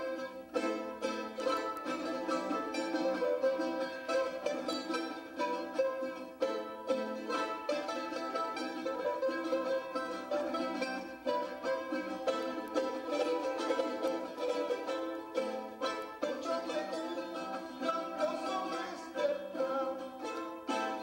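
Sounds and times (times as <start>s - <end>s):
charango strummed fast: 0.0s - 21.0s.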